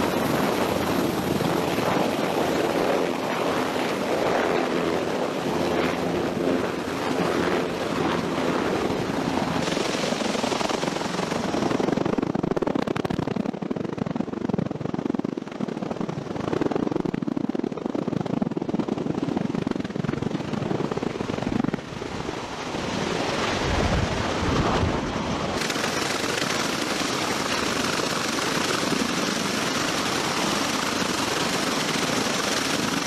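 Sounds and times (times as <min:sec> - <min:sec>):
aircraft rotors beating: 0:00.0 - 0:33.0.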